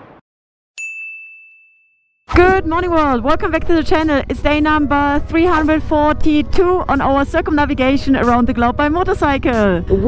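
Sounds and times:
bright ding chime: 0.8s - 2.1s.

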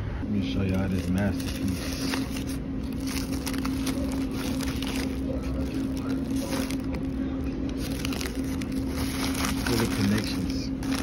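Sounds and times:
foil and paper wrapping crinkling: 0.6s - 11.0s.

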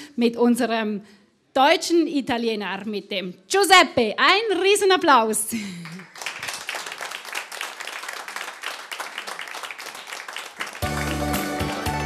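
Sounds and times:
audience clapping: 5.6s - 12.0s
music with strong bass: 10.8s - 12.0s.

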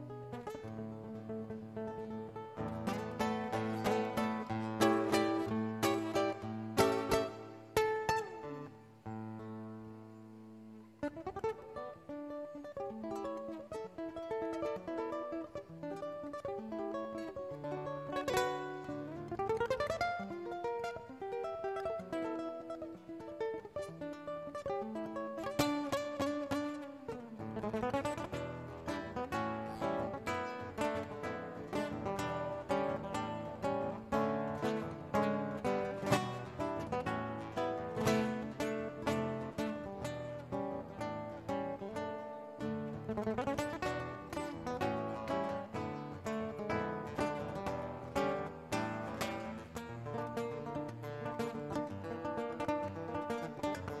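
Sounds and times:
fingerstyle classical guitar: 0.0s - 54.0s.

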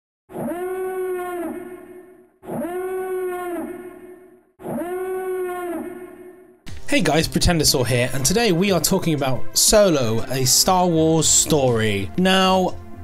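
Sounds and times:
howl-like animal call: 0.3s - 6.6s.

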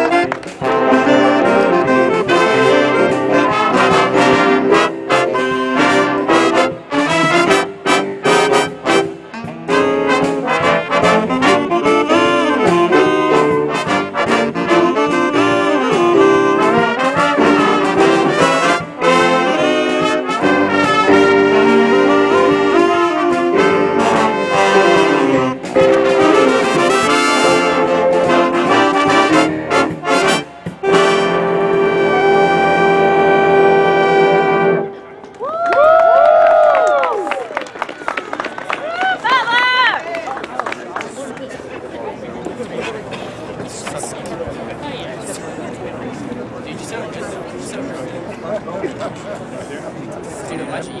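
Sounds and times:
jazz band playing: 0.0s - 35.2s
applause: 35.3s - 41.7s.

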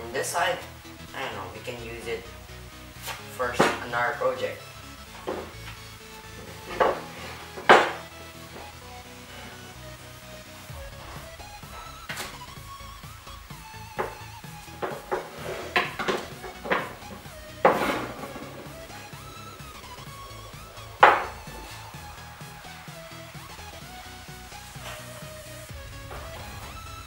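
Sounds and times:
background music: 0.0s - 27.0s
wooden boards clacking on workbench: 3.1s - 3.9s, 6.4s - 8.1s, 14.0s - 20.1s, 21.0s - 21.7s.

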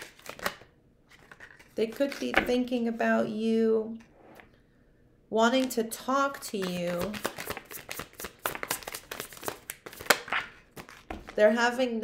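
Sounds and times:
cards being shuffled: 0.0s - 2.6s, 6.4s - 11.4s.

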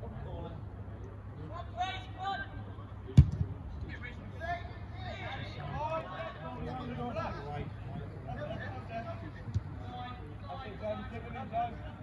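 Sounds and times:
players shouting and chatter: 0.0s - 12.0s
football kick thud: 3.2s - 3.5s.

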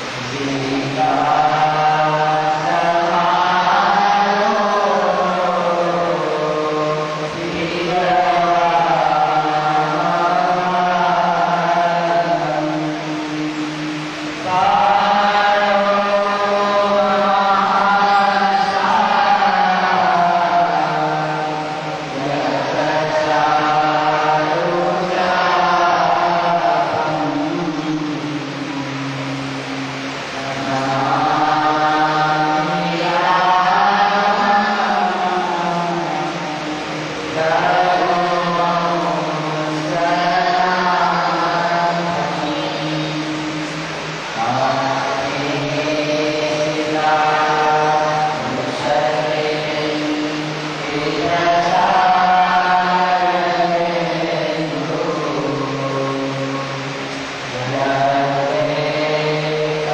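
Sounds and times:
voices chanting mantra: 0.0s - 59.9s.

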